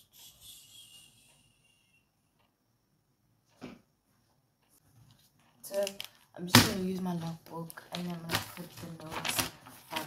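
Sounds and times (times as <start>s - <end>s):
faint rustling of handling: 3.5s - 6.4s, 7.2s - 10.0s.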